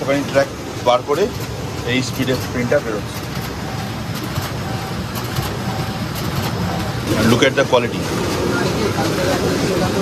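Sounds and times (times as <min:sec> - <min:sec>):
printer running: 0:00.0 - 0:10.0.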